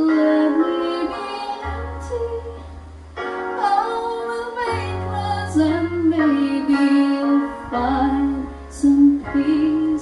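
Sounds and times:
woman singing: 0.0s - 2.7s, 3.5s - 10.0s.

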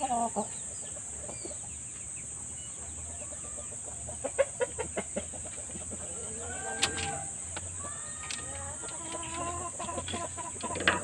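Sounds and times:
rooster clucking: 3.0s - 11.0s.

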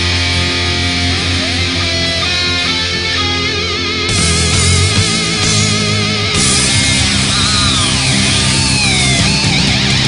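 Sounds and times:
heavy metal band playing live: 0.0s - 10.0s
high guitar notes sliding down: 0.0s - 10.0s.

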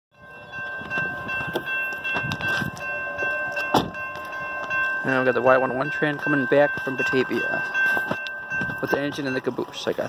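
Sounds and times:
crossing warning bell ringing: 0.1s - 10.0s.

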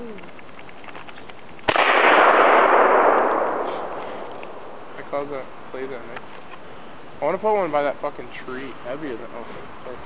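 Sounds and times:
gunshot with long echo: 1.7s - 5.2s.

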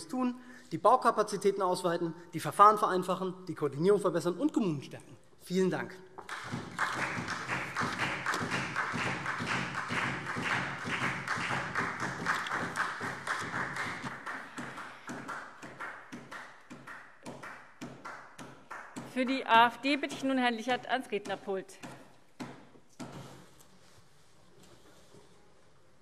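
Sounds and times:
many people clapping: 6.2s - 19.4s.

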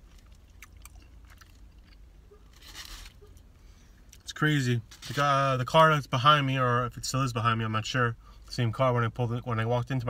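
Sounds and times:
person chewing crunchy pizza: 0.0s - 3.5s
soft rustle: 2.4s - 3.4s.

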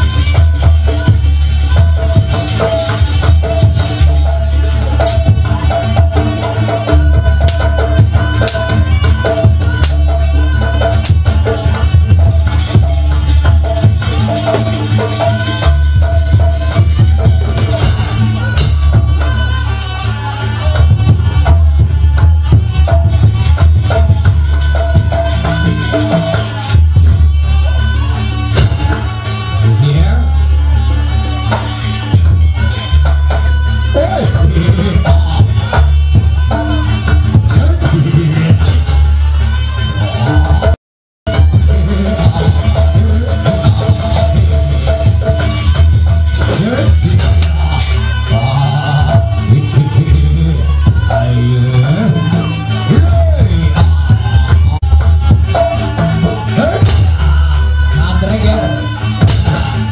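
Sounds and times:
gamelan ensemble music: 0.0s - 59.9s
heavy drum beats: 0.0s - 59.9s
person singing over music: 0.0s - 59.9s.

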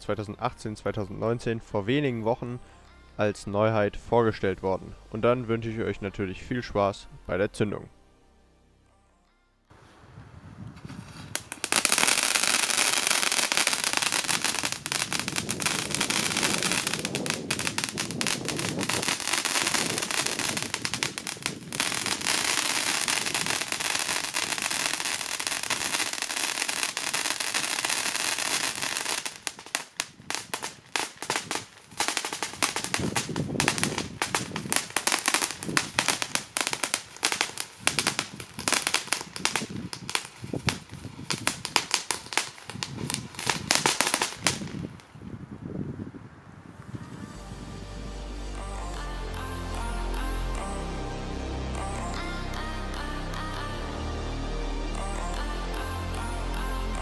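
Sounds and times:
crackling pops: 10.8s - 45.1s
firework fountain spraying sparks: 11.2s - 44.9s.

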